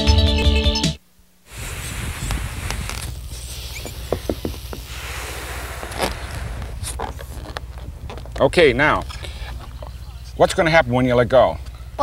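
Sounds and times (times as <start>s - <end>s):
outdoor background hiss: 1.0s - 12.0s
boy blowing into a balloon: 1.5s - 8.1s.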